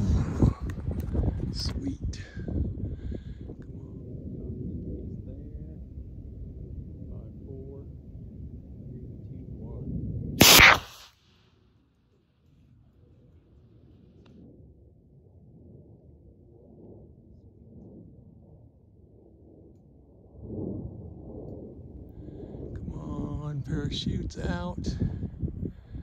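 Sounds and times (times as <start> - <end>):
wind rumble on microphone: 0.0 - 10.4, 12.5 - 26.0.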